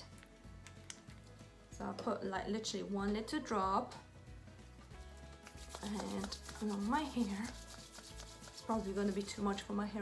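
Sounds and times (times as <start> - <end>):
quiet background music: 0.0 - 10.0
hands rubbing together: 4.8 - 9.6.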